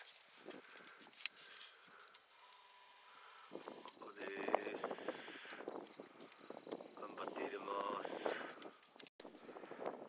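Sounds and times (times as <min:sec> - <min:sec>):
faint steady tone: 0:00.8 - 0:04.0.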